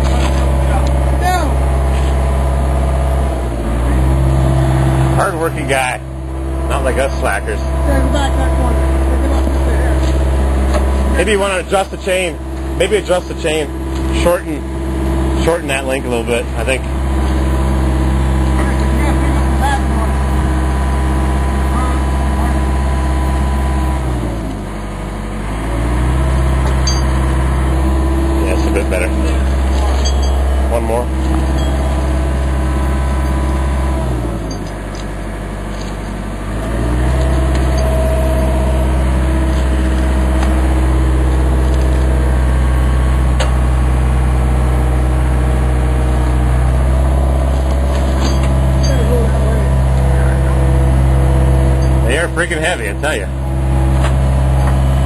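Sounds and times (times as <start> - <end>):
diesel engine running: 0.0 - 55.0.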